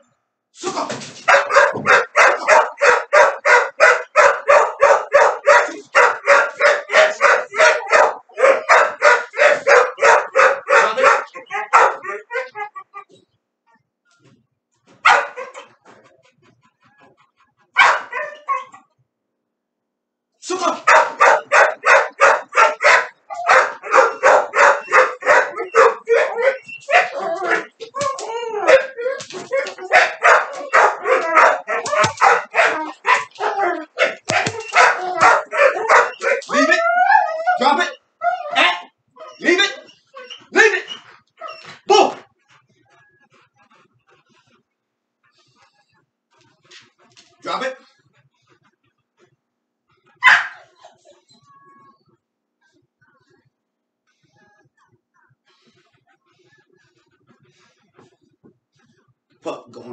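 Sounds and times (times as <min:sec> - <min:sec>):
dog barking: 0:01.2 - 0:12.6, 0:15.0 - 0:15.8, 0:17.7 - 0:18.8, 0:20.8 - 0:36.7, 0:50.2 - 0:51.2
dog whining: 0:05.5 - 0:13.8, 0:21.2 - 0:41.9, 0:50.2 - 0:52.0.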